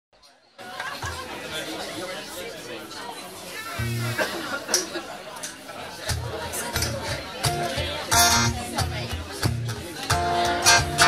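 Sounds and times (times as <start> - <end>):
people chattering: 0.2 - 11.0.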